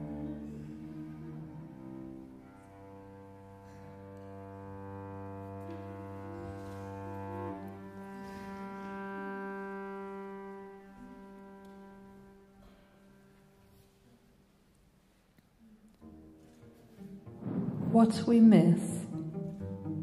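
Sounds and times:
piano playing slow notes: 0.0s - 13.6s
cello bowing sustained tones: 0.0s - 14.1s, 15.9s - 20.0s.

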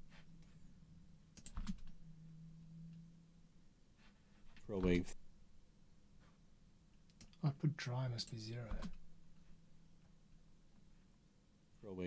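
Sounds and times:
faint low hum: 0.0s - 12.0s
keyboard and mouse clicks: 1.4s - 2.0s, 4.6s - 5.2s, 8.7s - 9.0s.

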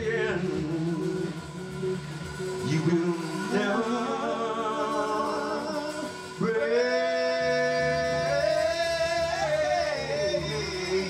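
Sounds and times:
two men singing: 0.0s - 1.8s, 2.6s - 11.0s
live band playing: 0.0s - 11.0s.

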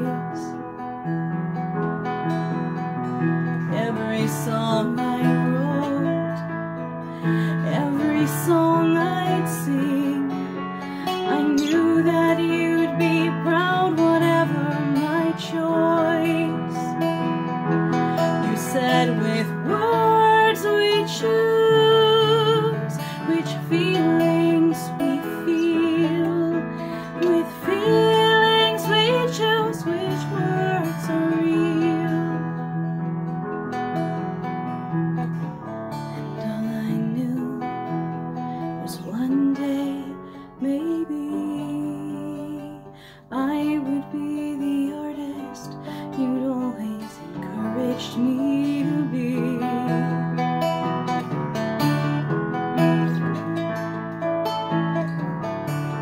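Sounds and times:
woman singing: 0.0s - 1.0s, 3.4s - 33.0s, 35.9s - 54.8s
strummed acoustic string instrument: 0.0s - 56.0s.

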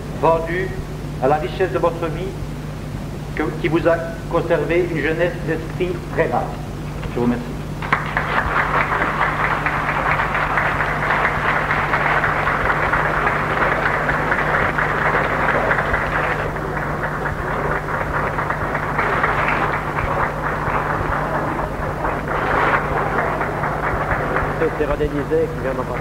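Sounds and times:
steady low hum: 0.0s - 26.0s
audience applauding: 7.8s - 26.0s.

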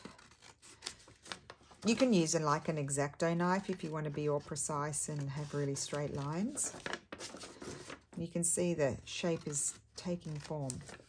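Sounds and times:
scissors snipping paper: 0.0s - 2.4s, 9.1s - 11.0s.

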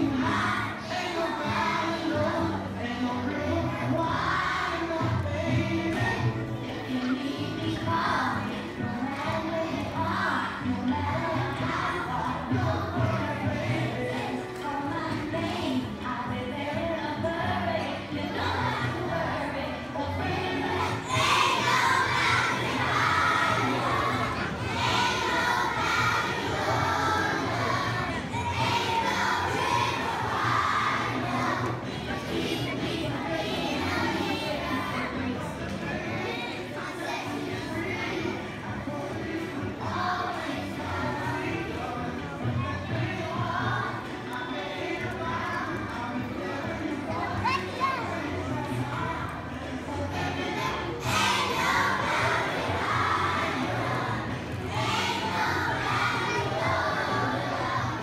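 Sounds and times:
children singing loudly: 0.0s - 58.0s.

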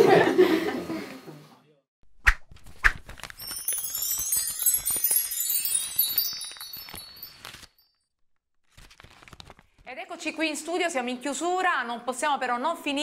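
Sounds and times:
sharp chime hits: 3.4s - 7.8s
cascade of tinkling chimes: 3.4s - 8.0s.

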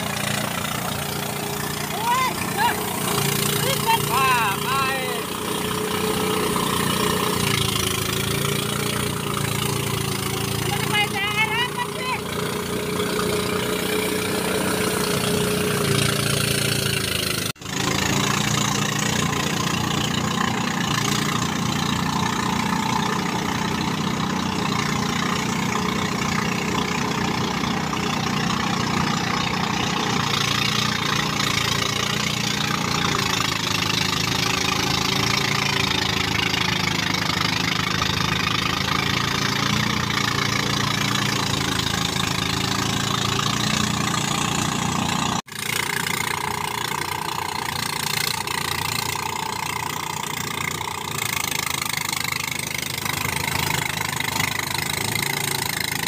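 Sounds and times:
engine-powered thresher running: 0.0s - 56.0s.

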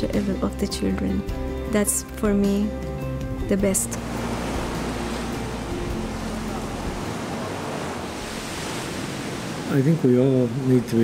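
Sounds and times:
ocean waves breaking on beach: 3.8s - 11.0s.

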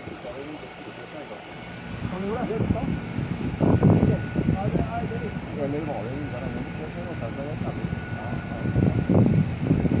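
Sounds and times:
faint steady whine: 0.0s - 10.0s
fire engine rumble: 0.0s - 10.0s.

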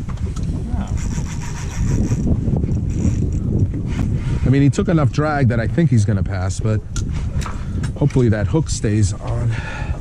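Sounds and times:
fishing reel drag buzzing: 0.8s - 3.4s.

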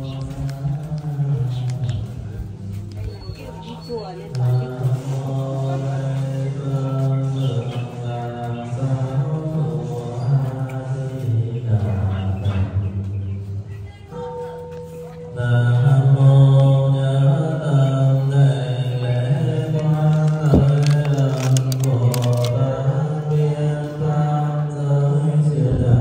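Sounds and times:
low-pitched chanting: 0.0s - 26.0s
sharp clicks: 19.8s - 22.6s.

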